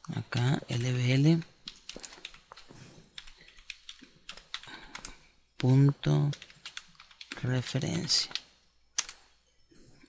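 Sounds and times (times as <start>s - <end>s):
typing on computer keyboard: 1.4s - 9.2s.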